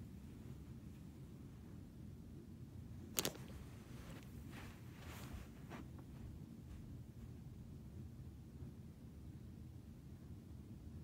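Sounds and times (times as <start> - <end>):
low room hum: 0.0 - 11.0
faint rustles: 3.1 - 7.5.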